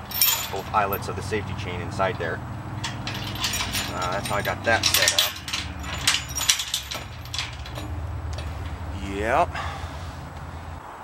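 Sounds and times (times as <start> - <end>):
steel chain clinking: 0.0 - 1.4, 2.7 - 9.3
low background rumble: 0.0 - 10.8.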